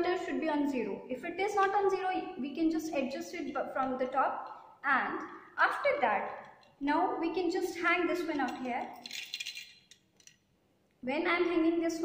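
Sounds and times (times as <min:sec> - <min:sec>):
metal stand clinking and rattling: 0:08.2 - 0:10.5.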